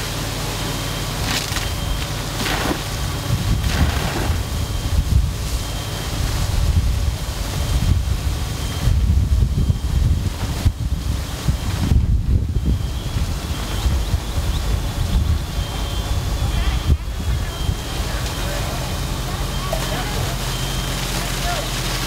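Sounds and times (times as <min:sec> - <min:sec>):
wind buffeting microphone: 0:02.9 - 0:19.3.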